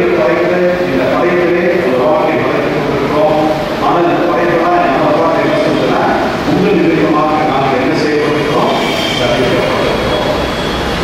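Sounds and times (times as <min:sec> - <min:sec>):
man preaching over microphone: 0:00.0 - 0:10.5
steady rushing rumbling noise: 0:00.0 - 0:11.0.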